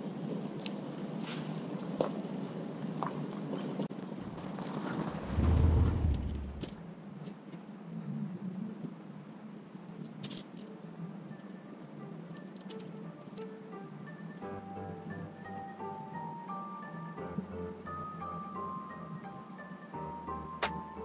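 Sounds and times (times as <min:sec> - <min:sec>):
low rumble: 0:04.2 - 0:06.8
soft marimba music: 0:14.0 - 0:21.0.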